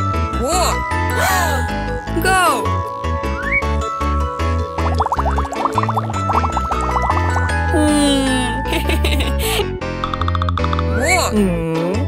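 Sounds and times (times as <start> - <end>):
children's background music: 0.0 - 12.0
cartoon bubbling blips: 4.8 - 7.2.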